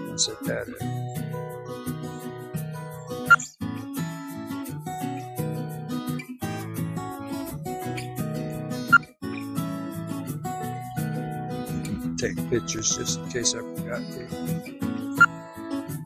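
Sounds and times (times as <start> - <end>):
acoustic guitar music: 0.0 - 16.0.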